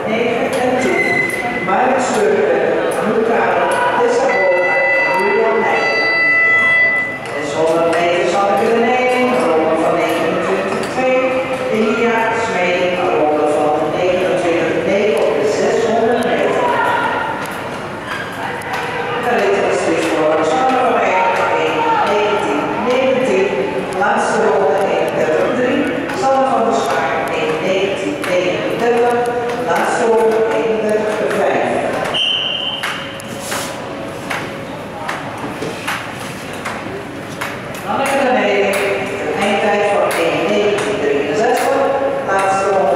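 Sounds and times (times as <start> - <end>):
voices echoing in a hall: 0.0 - 42.9.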